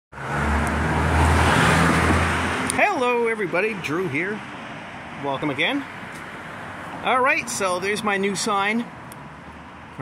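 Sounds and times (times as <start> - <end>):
road noise: 0.1 - 10.0.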